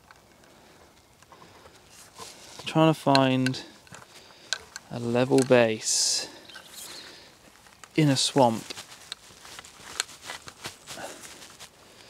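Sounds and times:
tripod clicks and rustles: 0.0 - 12.0.

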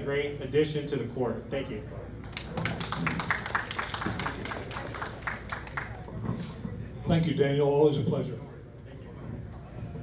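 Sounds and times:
audience applauding: 2.3 - 6.1.

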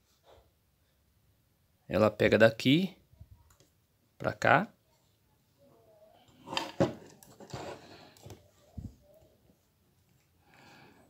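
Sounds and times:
plastic and metal parts rustling: 6.3 - 8.5.

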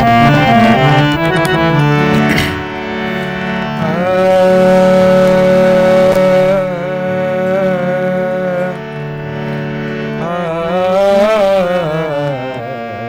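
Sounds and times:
acoustic guitar playing: 0.0 - 10.4
harmonium drone: 0.0 - 13.0.

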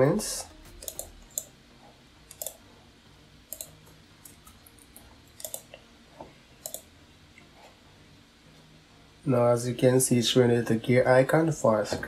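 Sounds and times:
computer mouse clicks: 0.8 - 1.5, 2.3 - 2.6, 3.5 - 4.6, 5.4 - 5.8, 6.6 - 6.9.

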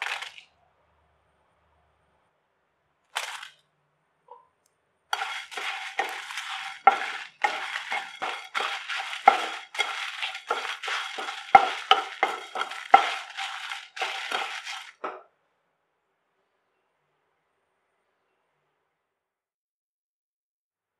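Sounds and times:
spatula stirring dry spices in pan: 5.1 - 15.0
spatula knocking against pan: 5.2 - 15.2.

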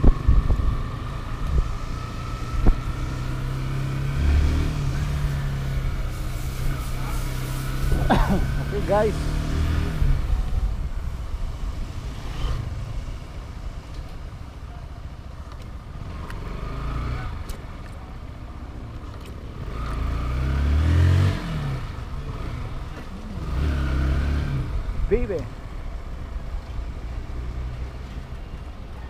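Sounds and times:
wind rumble on microphone: 0.0 - 3.5, 9.5 - 14.4
motorcycle engine revving: 0.0 - 13.6, 16.0 - 17.7, 19.5 - 25.5.

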